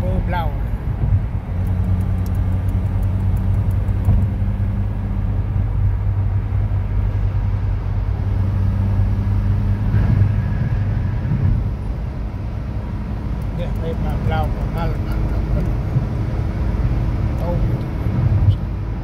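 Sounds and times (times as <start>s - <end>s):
car engine and road noise drone: 0.0s - 19.0s.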